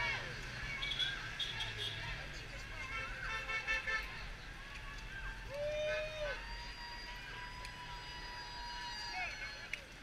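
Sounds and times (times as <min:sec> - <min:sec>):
people talking: 0:00.0 - 0:06.2
road traffic rumble: 0:00.0 - 0:10.0.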